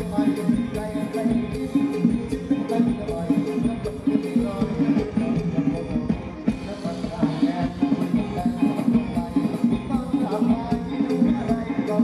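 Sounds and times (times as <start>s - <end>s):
live band dance music: 0.0s - 12.0s
repeating bass line: 0.0s - 12.0s
steady drum beat: 0.0s - 12.0s.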